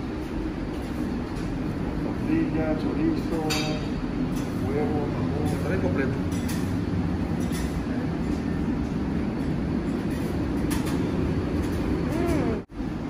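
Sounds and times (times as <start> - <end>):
ventilation rumble: 0.0 - 13.0.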